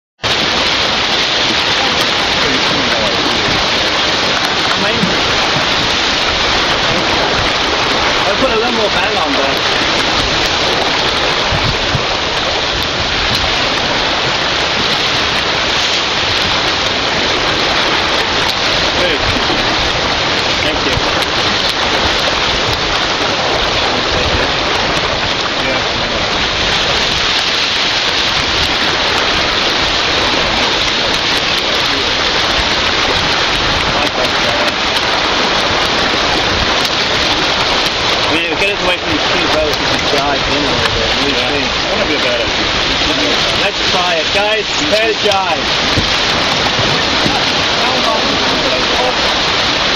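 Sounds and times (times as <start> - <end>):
wind and water rushing: 0.2 - 49.9.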